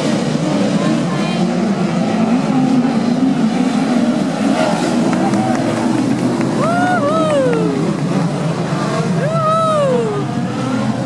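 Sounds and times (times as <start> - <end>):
race car engines running: 0.0 - 11.0.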